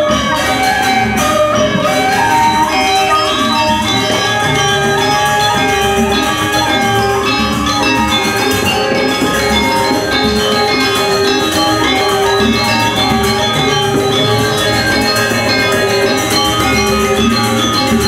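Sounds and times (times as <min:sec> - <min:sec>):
hand drums: 0:00.0 - 0:18.0
metallophones ringing: 0:00.0 - 0:18.0.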